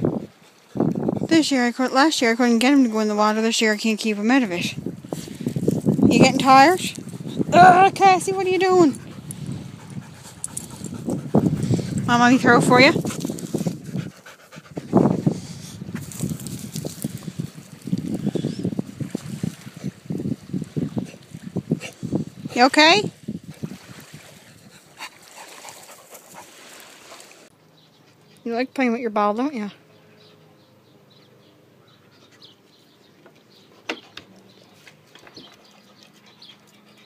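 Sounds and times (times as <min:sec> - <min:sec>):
dog panting: 0:06.4 - 0:15.8, 0:33.6 - 0:37.0.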